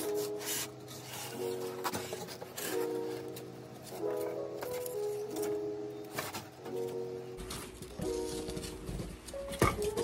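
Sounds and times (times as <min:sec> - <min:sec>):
soft melodic background music: 0:00.0 - 0:10.0.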